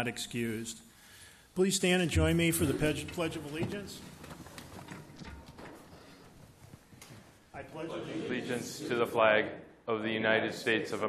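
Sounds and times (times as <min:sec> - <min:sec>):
people shuffling: 0:02.2 - 0:09.2
chairs moving: 0:02.4 - 0:07.5.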